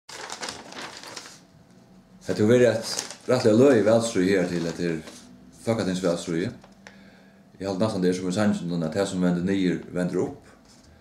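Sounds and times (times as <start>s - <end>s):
crackling rustling noise: 0.1s - 5.3s.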